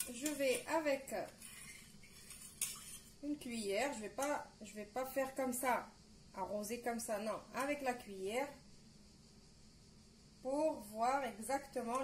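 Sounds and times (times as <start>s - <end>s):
metal spoon scraping a saucepan: 0.0s - 3.2s.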